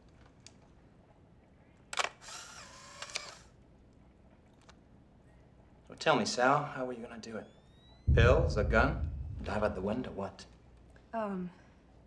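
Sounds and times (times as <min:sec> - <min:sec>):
camera motor whir with clicks: 0:01.9 - 0:03.5.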